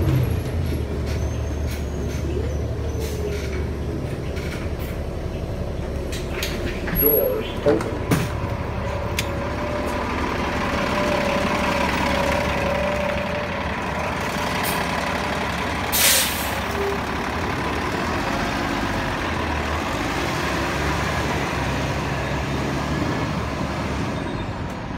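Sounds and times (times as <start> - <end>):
bus diesel engine running: 0.0 - 24.9
air brakes hissing: 15.9 - 16.8.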